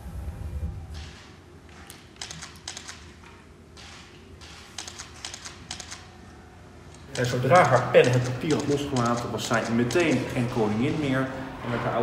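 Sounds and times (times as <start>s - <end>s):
rapid sharp clicks: 1.0s - 6.1s, 6.9s - 10.6s.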